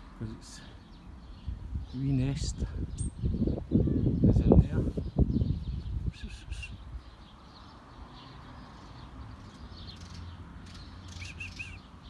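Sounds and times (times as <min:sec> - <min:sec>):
tits chirping: 0:05.1 - 0:12.0.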